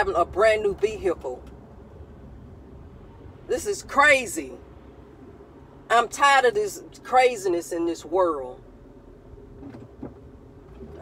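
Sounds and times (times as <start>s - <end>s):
car interior rumble: 0.0s - 11.0s.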